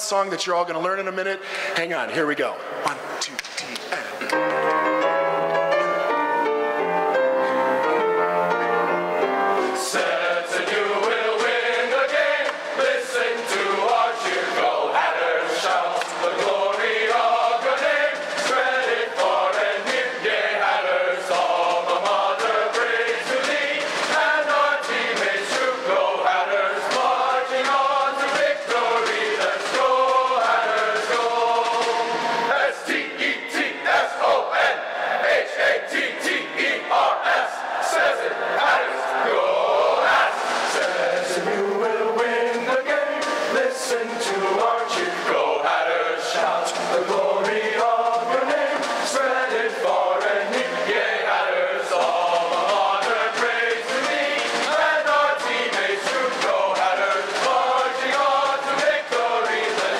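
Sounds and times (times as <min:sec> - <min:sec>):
sharp rhythmic beats: 0:08.0 - 0:59.9
men's chorus singing: 0:09.6 - 0:59.9.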